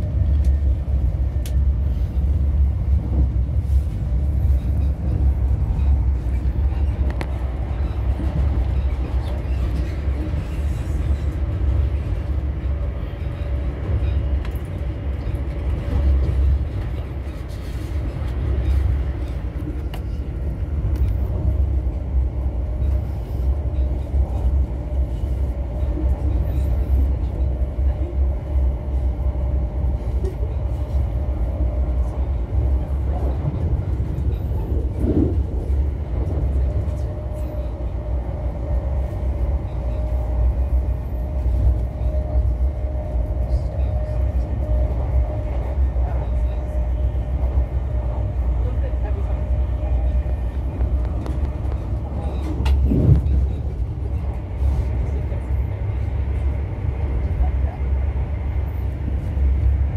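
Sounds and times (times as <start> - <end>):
steady train hum: 0.0 - 59.9
train wheels rumbling on rail: 0.0 - 59.9.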